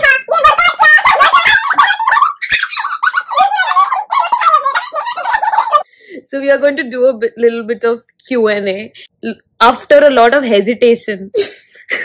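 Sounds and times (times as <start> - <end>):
women laughing loudly: 0.8 - 5.9.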